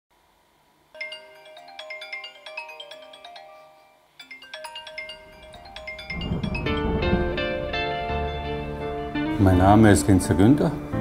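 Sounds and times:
phone alarm chiming melody: 1.0 - 8.2.

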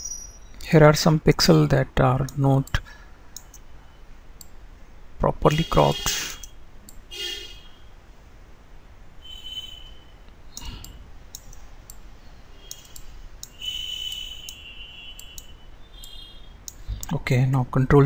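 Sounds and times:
computer mouse clicks: 3.4 - 3.6, 10.6 - 12.0, 12.6 - 14.6, 15.2 - 17.2.

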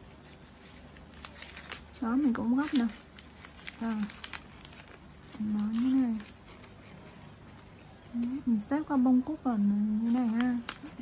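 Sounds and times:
wrapping paper crinkling: 0.0 - 8.7, 9.9 - 11.0.

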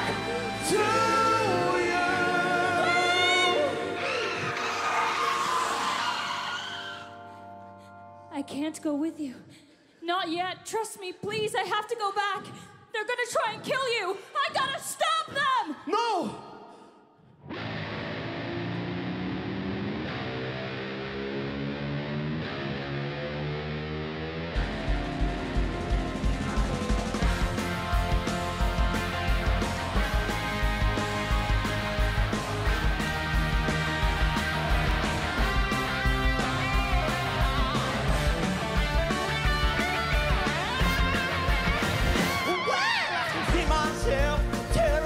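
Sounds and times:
bass guitar: 0.0 - 4.9, 17.5 - 42.7, 43.3 - 45.0
drums: 0.0 - 6.6, 24.4 - 45.0
distorted electric guitar: 17.4 - 45.0
keyboard chords: 21.7 - 42.5.

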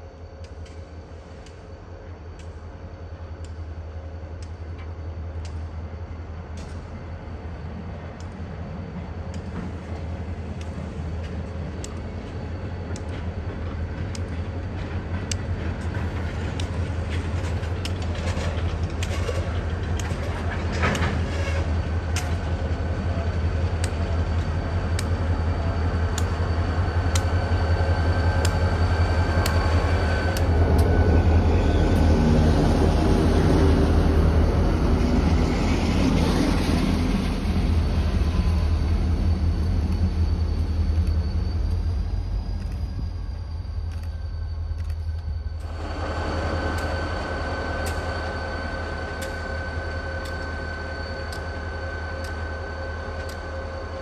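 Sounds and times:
diesel locomotive engine drone: 0.0 - 54.0
train wheels clicking over rail joints: 0.4 - 54.0.

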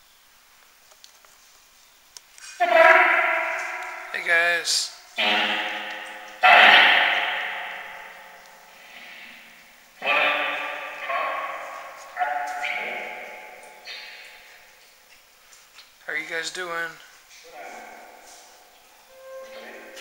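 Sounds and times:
echoing voice-like radio fragments: 2.6 - 14.4, 16.1 - 18.4.

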